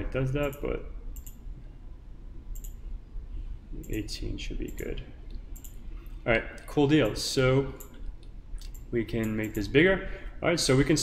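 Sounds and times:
computer mouse clicking: 0:01.2 - 0:01.4, 0:02.5 - 0:02.8, 0:04.6 - 0:05.8, 0:07.8 - 0:09.6.

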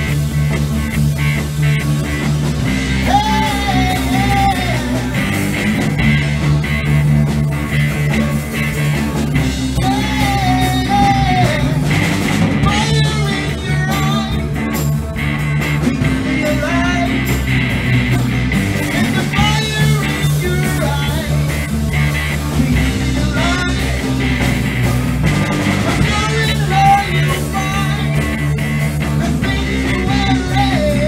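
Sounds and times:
rock band playing: 0:00.0 - 0:31.0
person singing: 0:03.0 - 0:05.5, 0:09.6 - 0:14.8, 0:15.8 - 0:17.4, 0:18.8 - 0:21.7, 0:22.5 - 0:24.2, 0:26.0 - 0:31.0.

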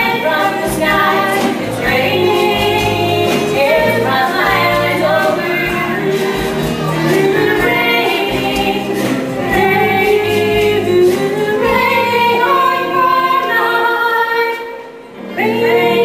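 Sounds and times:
band playing: 0:00.0 - 0:16.0
chorus singing held notes: 0:00.0 - 0:16.0.

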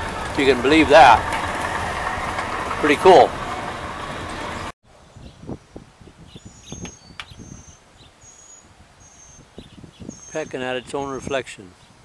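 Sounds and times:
vehicle road and engine noise: 0:00.0 - 0:04.8
small birds chirping: 0:05.0 - 0:12.0.

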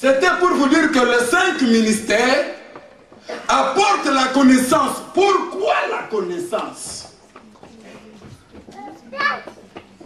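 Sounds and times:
faint background voices: 0:06.8 - 0:10.0.

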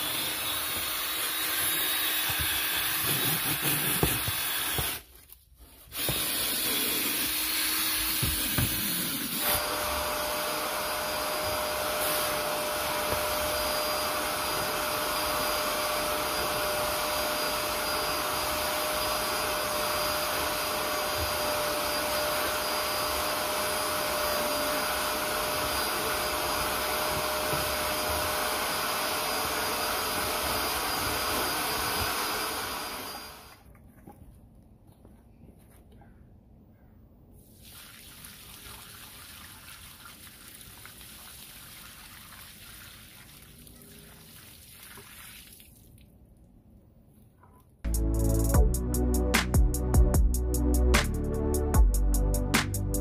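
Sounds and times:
vacuum cleaner with high whine: 0:00.0 - 0:05.0, 0:06.0 - 0:33.6
drill scrub brush on carpet: 0:00.0 - 0:05.1, 0:05.7 - 0:33.6.

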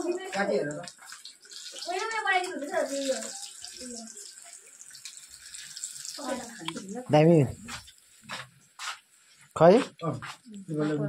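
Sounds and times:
chicken sizzling in hot oil: 0:00.0 - 0:10.9.

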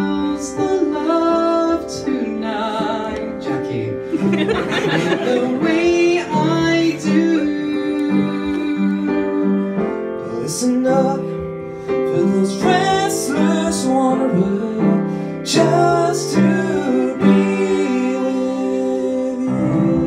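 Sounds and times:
men singing a show tune: 0:00.0 - 0:09.7, 0:12.1 - 0:20.0
piano accompaniment: 0:00.0 - 0:20.0.

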